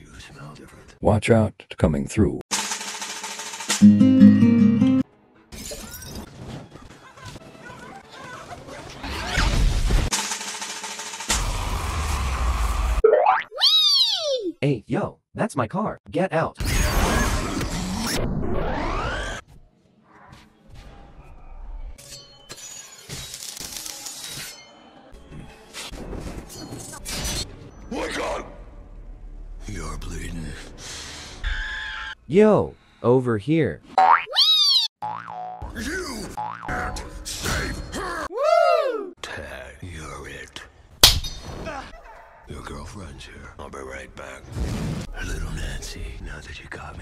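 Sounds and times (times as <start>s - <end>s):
noisy movie sound effects: 8.8s - 13.3s, 16.6s - 19.4s, 44.0s - 45.6s.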